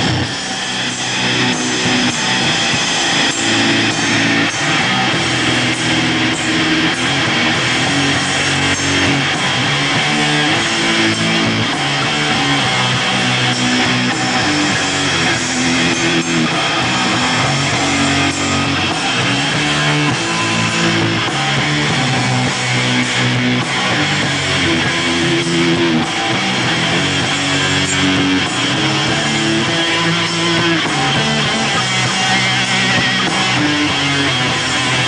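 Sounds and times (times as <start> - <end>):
distorted electric guitars: 0.0 - 35.0
drums and cymbals: 0.0 - 35.0.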